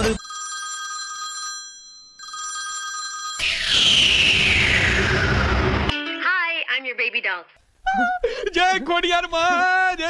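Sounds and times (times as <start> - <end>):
electronic phone ringtone: 0.0 - 3.5
falling whoosh sound effect: 3.4 - 5.9.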